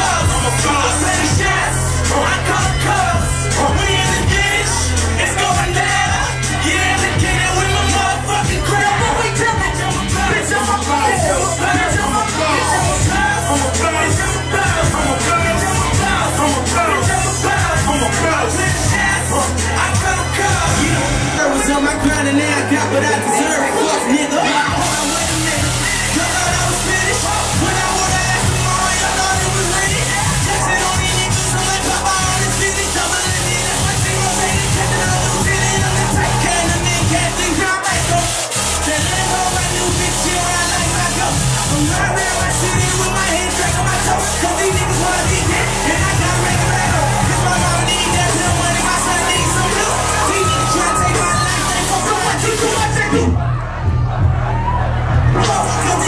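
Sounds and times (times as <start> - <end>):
heavy bass beat: 0.0 - 56.0
loud club music: 0.0 - 56.0.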